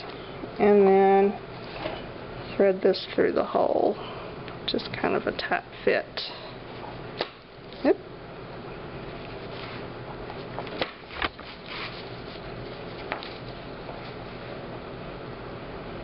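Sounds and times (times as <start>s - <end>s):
steady background hum: 0.0s - 16.0s.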